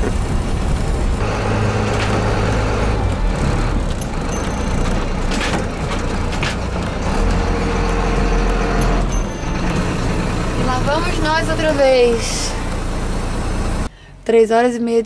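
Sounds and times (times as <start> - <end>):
bus engine running: 0.0 - 13.9.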